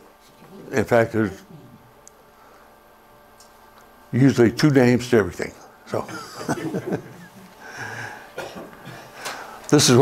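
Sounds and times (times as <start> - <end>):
man laughing: 6.0 - 8.1
person coughing: 8.0 - 9.2.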